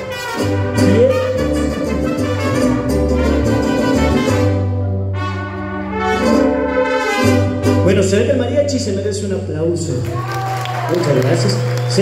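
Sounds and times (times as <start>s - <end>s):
trumpets playing melody: 0.0s - 8.4s
guitars strumming: 0.0s - 9.5s.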